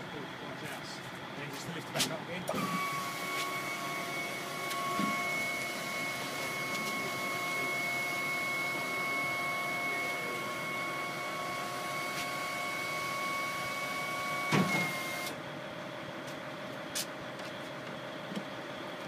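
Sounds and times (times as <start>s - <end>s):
hydraulic pump whining: 1.8s - 15.4s.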